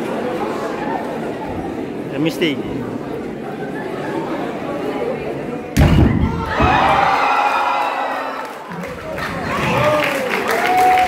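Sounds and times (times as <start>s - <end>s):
crowd chattering: 0.0s - 11.0s
crowd shouting and cheering: 5.8s - 11.0s.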